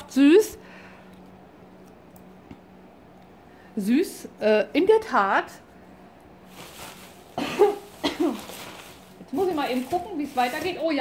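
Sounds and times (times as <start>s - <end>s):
woman coughing: 7.3s - 8.6s.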